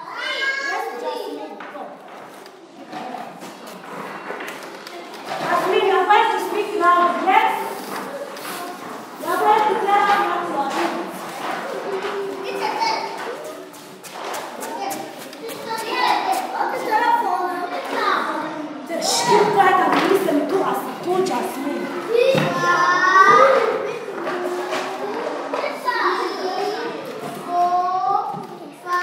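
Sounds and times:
children calling out: 0:00.0 - 0:01.5, 0:11.6 - 0:13.8, 0:21.3 - 0:29.0
children chattering: 0:00.0 - 0:29.0.

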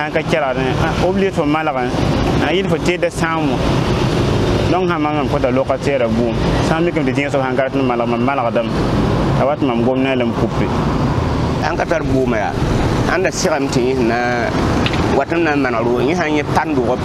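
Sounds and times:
man talking: 0:00.0 - 0:03.6, 0:04.7 - 0:08.8, 0:09.4 - 0:10.8, 0:11.5 - 0:17.0
street traffic rumble: 0:00.0 - 0:17.0.

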